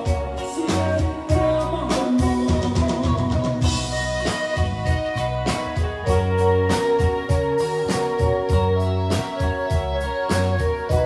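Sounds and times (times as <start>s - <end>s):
bass: 0.0s - 11.0s
drum kit steady beat: 0.0s - 11.0s
sustained keyboard notes: 0.0s - 11.0s.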